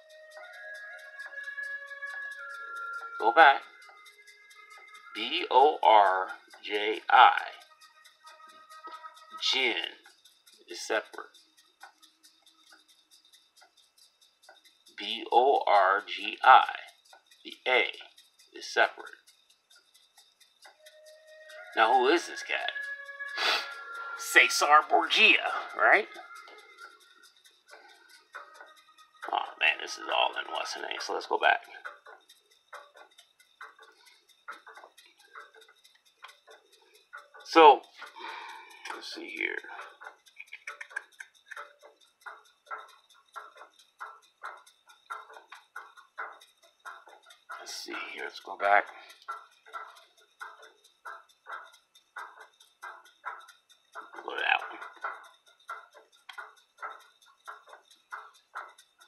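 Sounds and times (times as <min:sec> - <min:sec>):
light ticking: 0:00.0 - 0:59.0.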